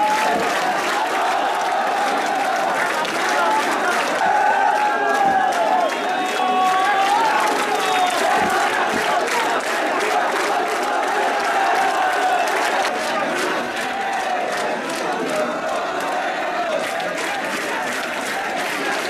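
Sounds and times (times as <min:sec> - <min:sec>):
hand-clapping: 0:00.0 - 0:19.0
men shouting and cheering: 0:00.0 - 0:19.0.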